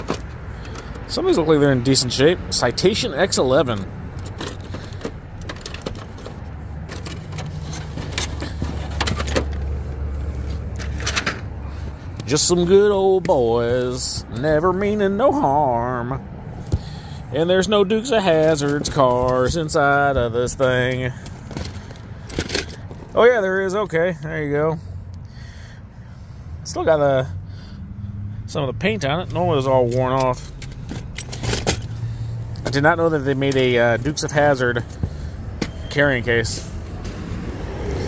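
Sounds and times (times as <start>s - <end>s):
metal toy cars clinking: 10.8s - 11.4s, 29.9s - 31.9s.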